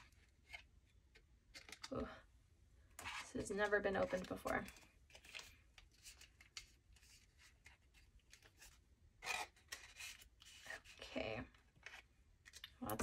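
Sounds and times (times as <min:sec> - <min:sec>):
banknotes and envelope rustling: 0:03.0 - 0:11.0.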